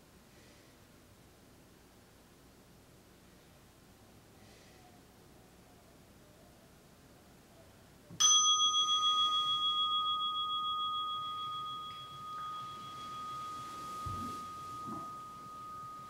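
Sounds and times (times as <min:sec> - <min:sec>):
meditation bell ringing: 0:08.2 - 0:16.0
soft low thump: 0:13.9 - 0:15.3.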